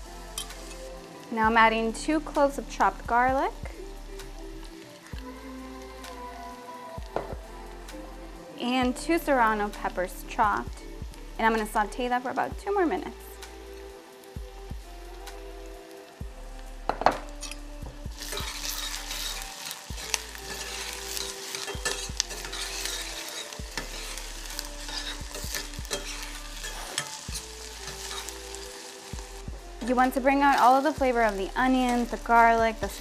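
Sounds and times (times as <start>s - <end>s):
vegetables sizzling in oil: 0.0s - 33.0s
metal spoon scraping a pan: 18.2s - 29.0s.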